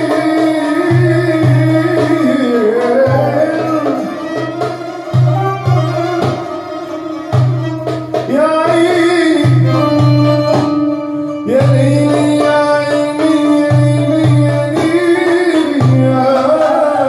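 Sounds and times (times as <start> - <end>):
hand drum strokes: 0.0 - 17.0
violin melody: 0.0 - 17.0.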